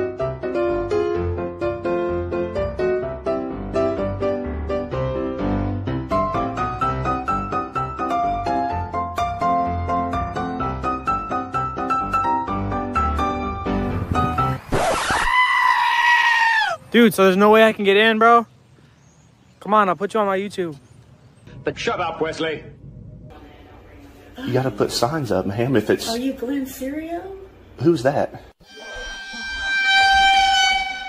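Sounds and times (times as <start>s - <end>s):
high bleat-like scream: 14.8s - 16.8s, 28.6s - 31.0s
horn blast: 28.6s - 31.0s.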